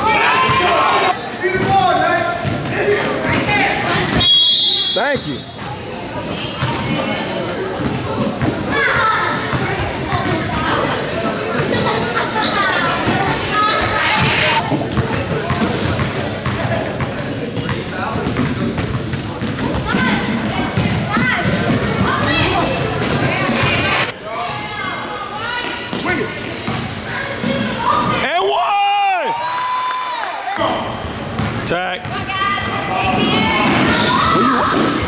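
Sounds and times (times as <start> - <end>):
crowd chatter in a hall: 0.0 - 35.0.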